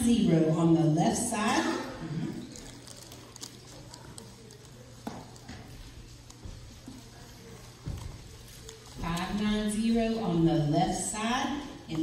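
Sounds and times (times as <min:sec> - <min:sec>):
faint voices: 0:00.0 - 0:12.0.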